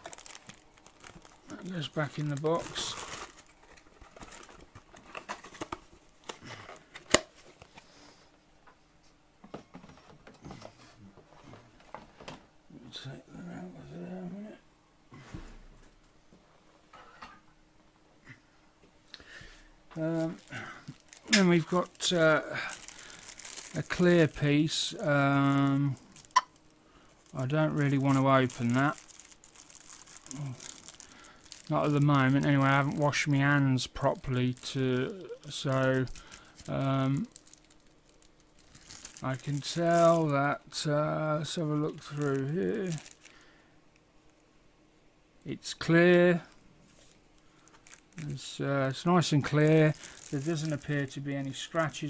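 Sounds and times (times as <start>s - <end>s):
plastic bag crinkling: 0.0s - 7.0s, 20.0s - 43.6s, 46.4s - 52.0s
cardboard box and plastic rustling: 0.0s - 7.9s, 20.1s - 34.8s, 35.4s - 40.4s, 41.8s - 43.4s, 46.9s - 48.4s, 49.2s - 52.0s.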